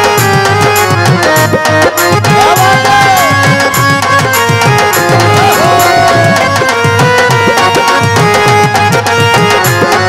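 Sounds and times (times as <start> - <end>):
hand drums rhythm: 0.0 - 10.0
harmonium chords: 0.0 - 10.0.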